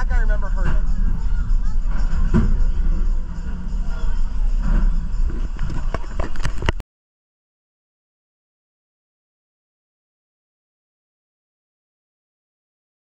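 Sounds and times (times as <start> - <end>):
people's voices: 0.0 - 6.6
roller coaster train rumbling: 0.0 - 6.8.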